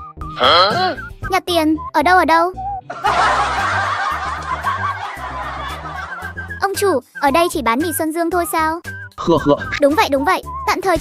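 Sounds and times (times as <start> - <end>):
background music with bass line: 0.0 - 1.8, 2.6 - 11.0
cartoon snickering laughter: 2.9 - 6.5.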